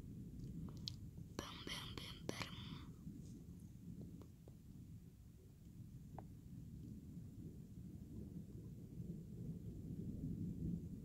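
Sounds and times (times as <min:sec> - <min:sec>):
faint low rumble: 0:00.0 - 0:11.0
person whispering: 0:01.4 - 0:02.9.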